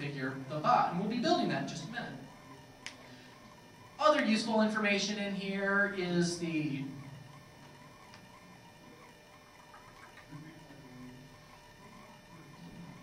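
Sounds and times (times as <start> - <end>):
faint electrical whine: 0.0 - 13.0
faint voice murmur: 8.3 - 13.0.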